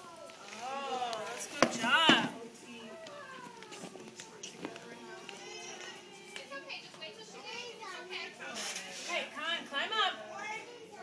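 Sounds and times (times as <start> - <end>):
chatter of children and adults: 0.0 - 11.0.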